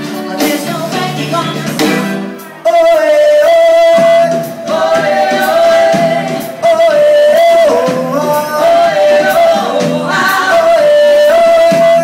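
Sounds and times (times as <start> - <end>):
live band playing: 0.0 - 12.0
singers holding long notes: 2.4 - 12.0.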